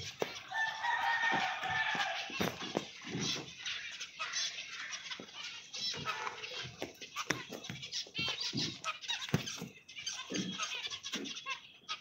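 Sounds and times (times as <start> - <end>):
finches chirping: 0.0 - 12.0.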